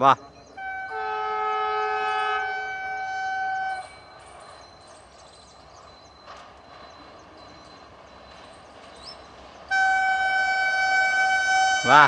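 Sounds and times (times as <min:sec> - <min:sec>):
train horn blast: 0:00.6 - 0:04.2, 0:09.7 - 0:12.0.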